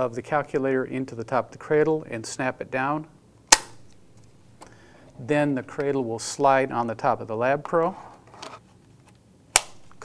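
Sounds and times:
cradle snapping into place click: 0:09.6 - 0:09.8.

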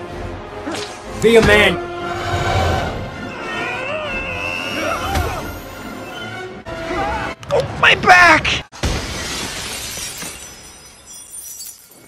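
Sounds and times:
glass window shattering: 0:08.8 - 0:12.0.

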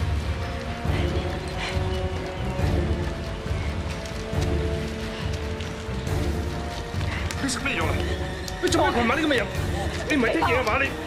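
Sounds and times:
tense background music: 0:00.0 - 0:11.0.

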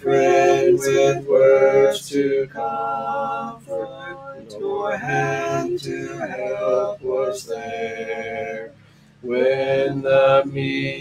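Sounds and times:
man singing a hymn: 0:00.0 - 0:11.0
man breathing in: 0:08.7 - 0:09.2.

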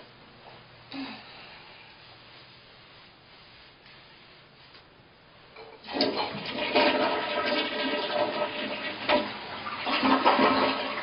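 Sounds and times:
toilet flushing: 0:05.6 - 0:11.0.

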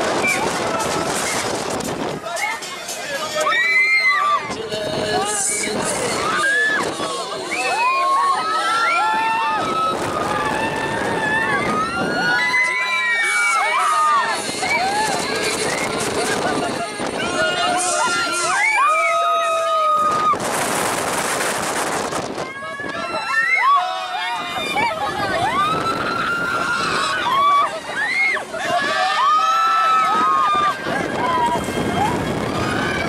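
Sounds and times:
wind noise: 0:00.0 - 0:02.3, 0:09.0 - 0:12.6, 0:14.2 - 0:18.3, 0:19.9 - 0:23.4, 0:24.3 - 0:33.0
riders screaming: 0:22.5 - 0:33.0.

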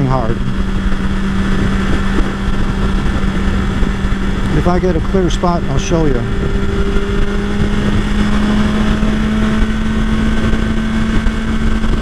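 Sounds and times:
motorcycle engine cruising: 0:00.0 - 0:12.0
wind and road rumble: 0:00.0 - 0:12.0.

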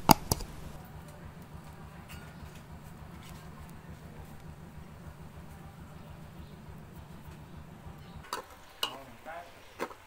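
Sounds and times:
low rumble: 0:00.0 - 0:08.3.

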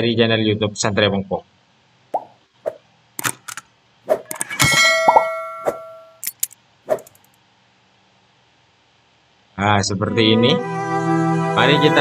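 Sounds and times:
sharp clicks and knocks: 0:03.2 - 0:04.9
bright bell ding: 0:04.5 - 0:06.2.

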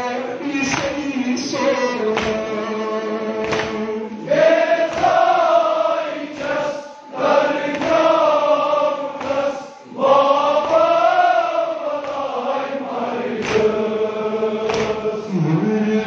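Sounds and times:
men chanting a lament: 0:00.0 - 0:16.0.

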